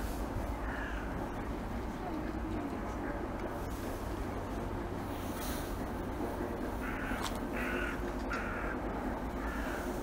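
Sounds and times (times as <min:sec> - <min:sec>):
crow cawing: 0:00.6 - 0:01.2, 0:06.8 - 0:08.8, 0:09.4 - 0:09.9.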